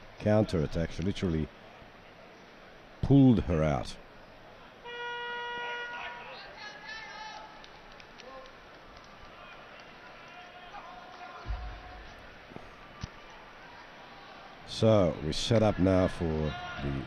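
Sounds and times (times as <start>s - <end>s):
crowd noise: 0.0s - 17.0s.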